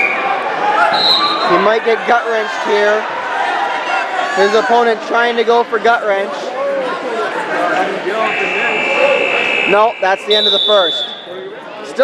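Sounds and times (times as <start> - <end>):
crowd shouting and chattering: 0.0 - 12.0
scoreboard buzzer: 8.2 - 11.3.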